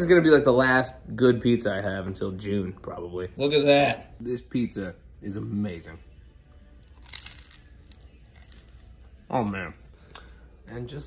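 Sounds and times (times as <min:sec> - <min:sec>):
crunch of biting pizza crust: 0:06.8 - 0:09.1
small crackles: 0:06.8 - 0:09.2.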